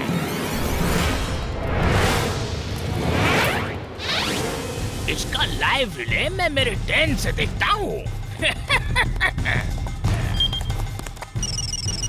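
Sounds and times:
whoosh sound effects: 0.5s - 5.1s.

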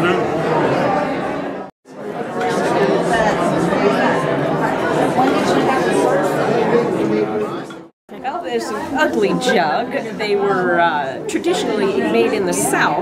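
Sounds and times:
crowd chatter in large room: 0.0s - 13.0s.

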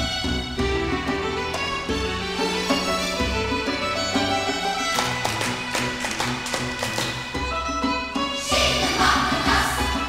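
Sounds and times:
traditional fiddle music: 0.0s - 10.0s
sharp rhythmic taps: 4.8s - 7.8s.

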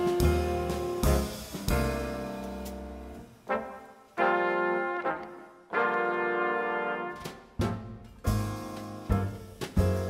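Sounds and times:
brass section playing chords: 3.4s - 7.3s.

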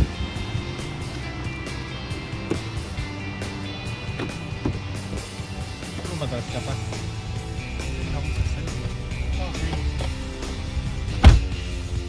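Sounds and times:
music playing: 0.0s - 12.0s
pickup truck rumble from cab: 0.0s - 12.0s
loud thump: 11.1s - 11.6s.

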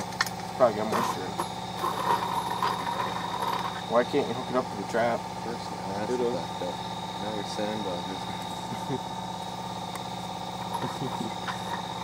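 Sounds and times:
air compressor running: 0.0s - 12.0s.

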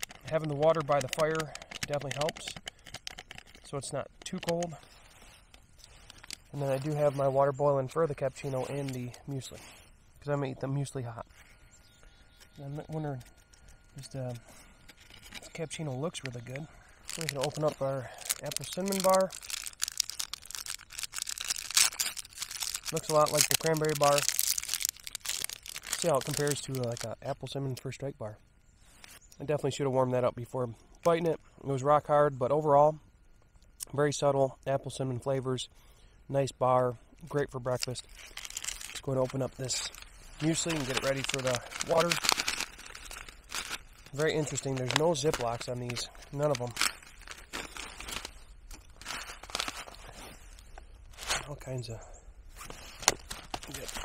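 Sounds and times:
snack wrapper tearing and crinkling: 0.0s - 3.7s, 14.8s - 27.1s, 37.7s - 50.1s, 52.6s - 54.0s.

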